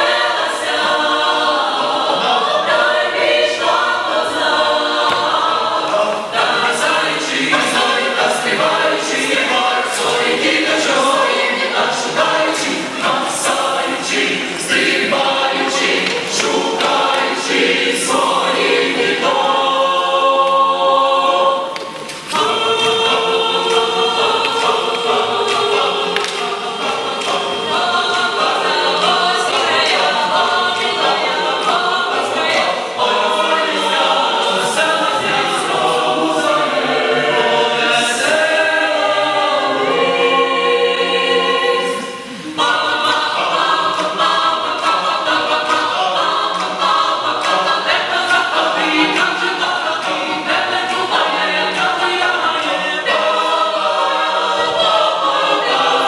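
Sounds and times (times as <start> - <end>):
choir singing a cappella: 0.0 - 56.0.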